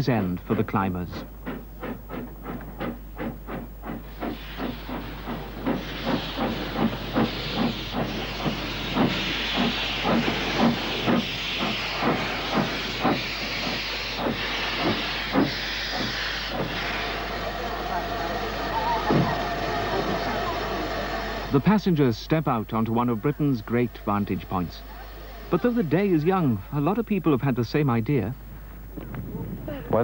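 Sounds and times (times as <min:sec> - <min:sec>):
steam locomotive hissing steam: 0:00.0 - 0:28.9.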